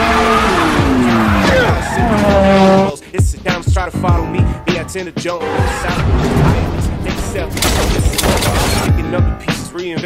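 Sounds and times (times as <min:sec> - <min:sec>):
car engine revs dropping: 0:00.0 - 0:03.0
tyre skid noise: 0:00.0 - 0:03.0.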